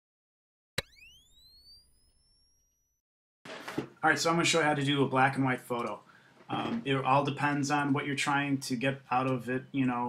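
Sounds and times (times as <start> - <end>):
rising electronic tone: 0.8 - 3.0
man talking: 4.0 - 10.0.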